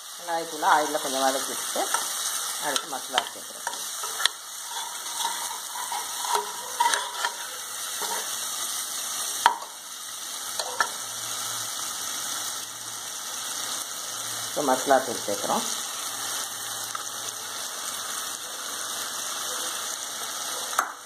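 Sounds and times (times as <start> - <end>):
food sizzling in oil: 0.0 - 21.0
steel spoon scraping and knocking pot: 2.7 - 8.4.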